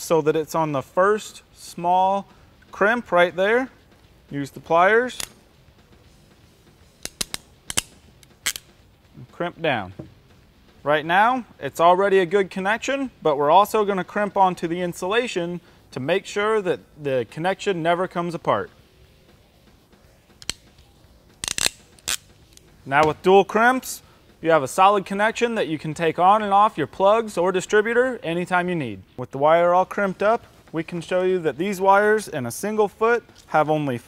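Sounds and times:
crimping pliers clicking: 7.0 - 8.7.

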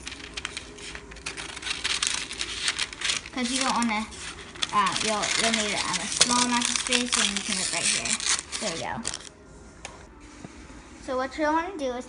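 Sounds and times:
scissors snipping paper: 0.0 - 9.3
stiff paper crinkling: 0.0 - 9.3.

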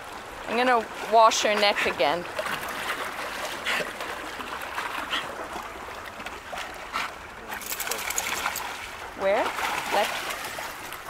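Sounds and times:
water lapping against rocks: 0.0 - 11.0
dog splashing in water: 7.4 - 11.0.

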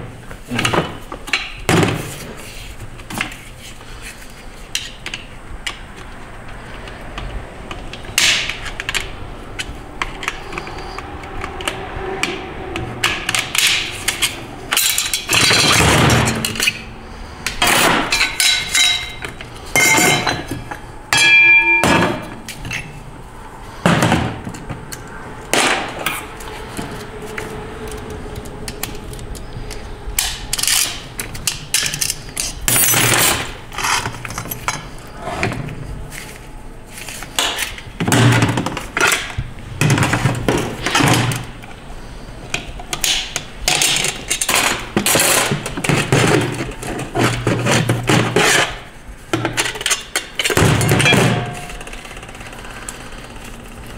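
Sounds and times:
metal clutch parts clinking: 17.5 - 23.0
metallic ringing: 18.1 - 23.0, 51.0 - 52.0.

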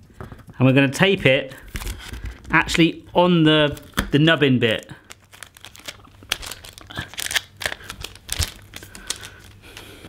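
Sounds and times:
sticky tape tearing and crinkling: 3.6 - 9.8.

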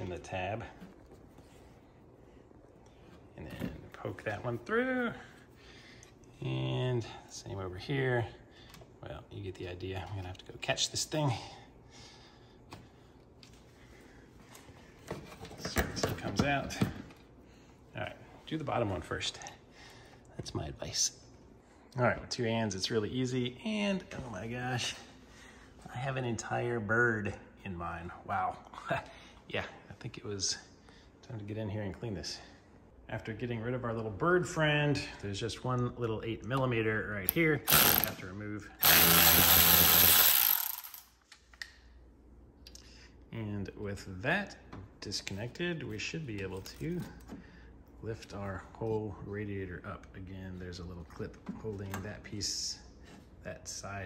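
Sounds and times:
electric ratchet spinning: 37.7 - 38.2, 38.8 - 41.1.

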